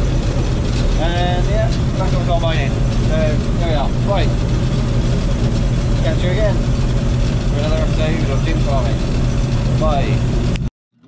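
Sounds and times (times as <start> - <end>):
low engine drone: 0.0 - 11.0.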